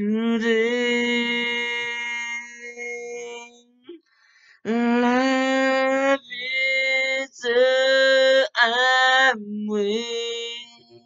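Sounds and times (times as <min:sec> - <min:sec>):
man singing a cappella: 0:00.0 - 0:03.5, 0:04.7 - 0:11.0.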